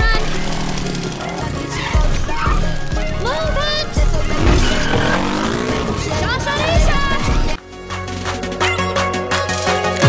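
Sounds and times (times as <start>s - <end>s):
scooter engine revving: 0.0s - 7.6s
voices crying out: 0.0s - 7.6s.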